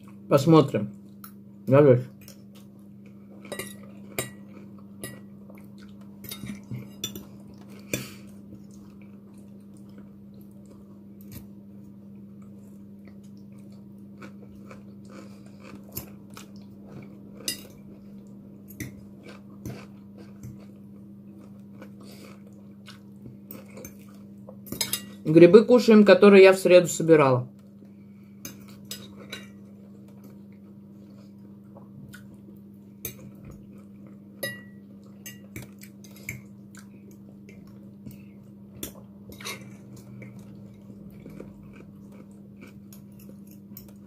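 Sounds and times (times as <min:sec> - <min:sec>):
steady low hum: 0:00.0 - 0:44.0
chewing: 0:12.4 - 0:24.8, 0:34.8 - 0:44.0.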